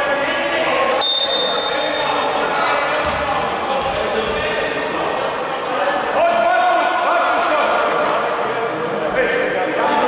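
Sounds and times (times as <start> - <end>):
voices echoing in a hall: 0.0 - 10.0
basketball bouncing on floor: 3.0 - 4.4.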